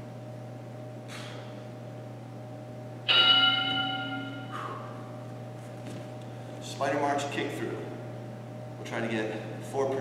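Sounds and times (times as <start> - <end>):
steady low hum: 0.0 - 10.0
bell-like timer chime: 3.1 - 4.5.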